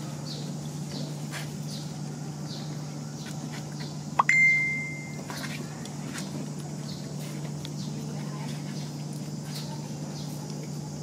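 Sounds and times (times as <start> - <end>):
steady low hum: 0.0 - 11.0
high beep: 4.2 - 5.2
short rising chirp: 4.2 - 5.2.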